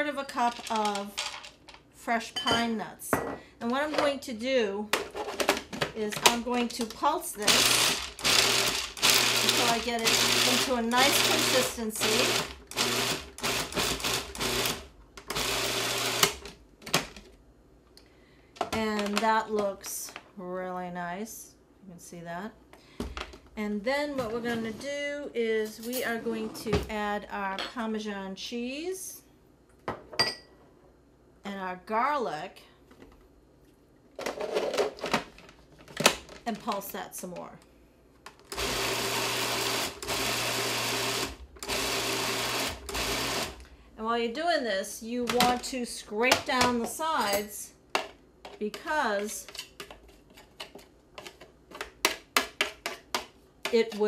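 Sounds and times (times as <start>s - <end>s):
food processor motor: 7.5s - 16.4s, 38.5s - 43.7s.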